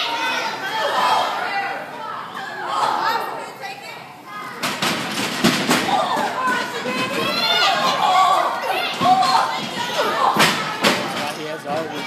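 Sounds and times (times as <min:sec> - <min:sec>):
spectators shouting: 0:05.8 - 0:11.2.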